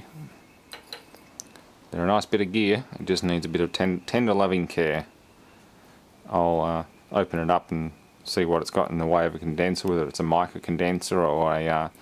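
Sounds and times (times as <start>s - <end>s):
metal cap clinking on workbench: 0.7s - 1.3s.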